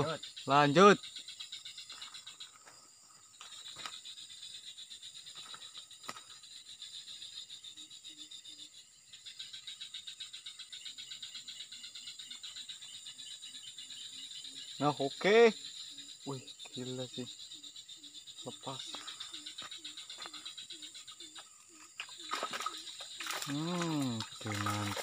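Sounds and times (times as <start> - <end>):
insects chirping: 0.0 - 25.0.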